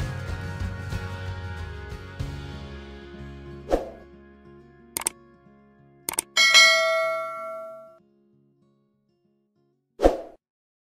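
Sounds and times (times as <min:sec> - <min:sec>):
button clicks: 0:06.1 - 0:07.9
bell-like ding: 0:06.2 - 0:08.0.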